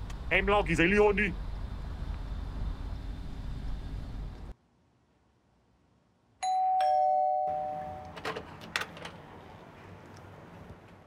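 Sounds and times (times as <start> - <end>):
two-tone doorbell chime: 6.4 - 8.2.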